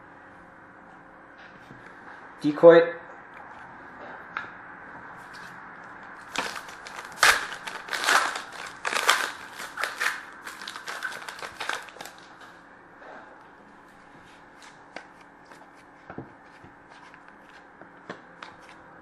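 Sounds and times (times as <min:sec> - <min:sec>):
foil wrapper crinkling: 0:06.2 - 0:12.4.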